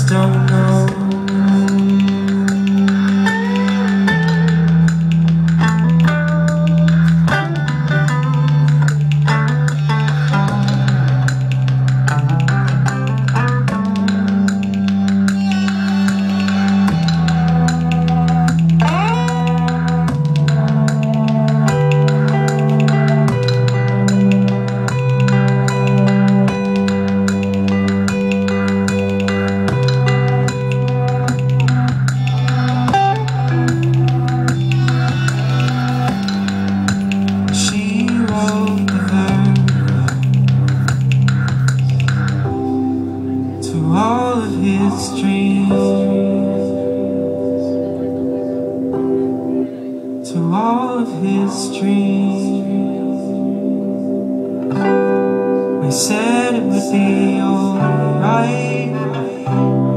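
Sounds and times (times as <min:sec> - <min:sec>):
electric guitar notes: 0:00.0 - 0:59.9
light percussive ticks: 0:00.1 - 0:42.5.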